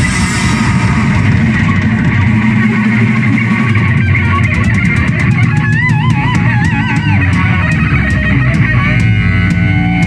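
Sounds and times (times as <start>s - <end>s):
punk band playing loud: 0.0s - 10.0s.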